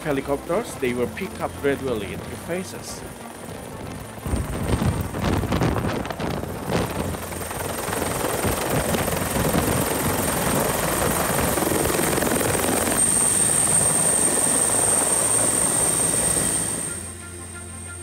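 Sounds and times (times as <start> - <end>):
helicopter rotor and engine noise: 0.0 - 18.0
thin high whine: 13.0 - 18.0.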